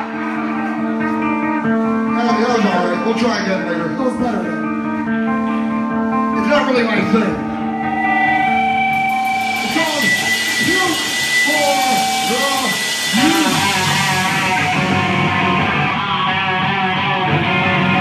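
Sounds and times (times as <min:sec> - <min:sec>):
electric guitar noodling: 0:01.4 - 0:18.0
steady wash of noise: 0:08.4 - 0:16.5
bass guitar noodling: 0:13.8 - 0:18.0.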